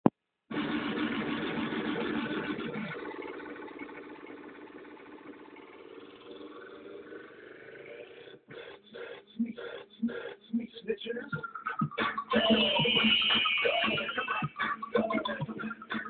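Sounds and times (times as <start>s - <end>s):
distorted dj playback with beat: 0.5s - 16.0s.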